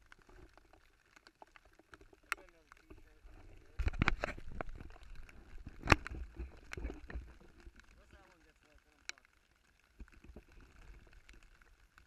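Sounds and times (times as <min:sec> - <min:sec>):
camera handling clicks and rustles: 0:03.8 - 0:04.8, 0:05.7 - 0:07.2.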